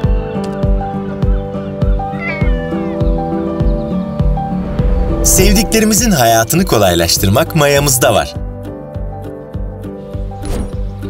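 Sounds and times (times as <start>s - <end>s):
cat meowing: 1.9s - 3.2s.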